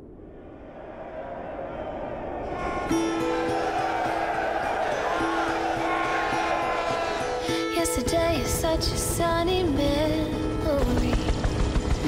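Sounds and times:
men yelling: 0:01.2 - 0:07.5
loud horn blast: 0:02.4 - 0:07.4.

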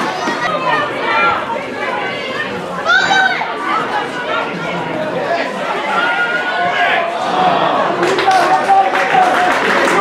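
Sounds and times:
people calling out and chattering: 0:00.0 - 0:10.0.

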